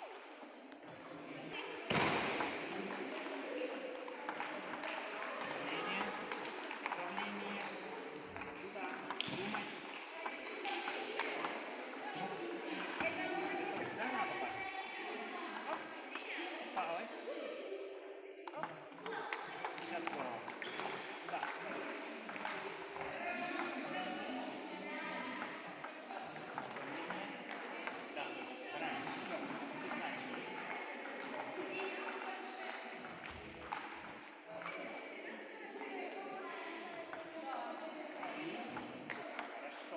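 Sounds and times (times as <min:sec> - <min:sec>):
table tennis balls clicking: 0:01.9 - 0:14.2, 0:14.9 - 0:16.9, 0:18.4 - 0:23.9, 0:25.2 - 0:34.8, 0:37.0 - 0:39.9.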